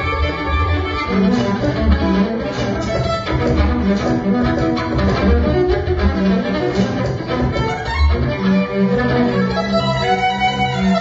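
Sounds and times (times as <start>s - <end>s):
violin bowed improvisation: 0.0s - 11.0s.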